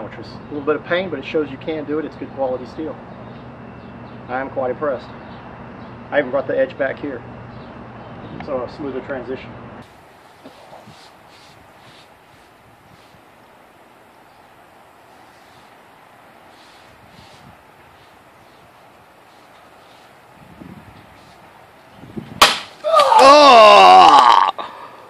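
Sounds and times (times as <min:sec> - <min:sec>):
soft rustles and shuffles: 0:10.1 - 0:13.4, 0:15.0 - 0:21.6.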